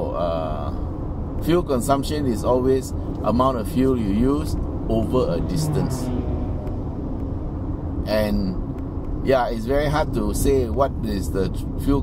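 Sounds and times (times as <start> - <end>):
road and engine rumble in car: 0.0 - 12.0.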